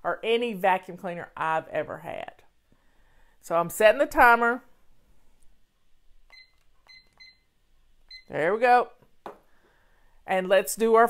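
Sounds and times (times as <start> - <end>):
digital timer beeps: 6.3 - 7.4.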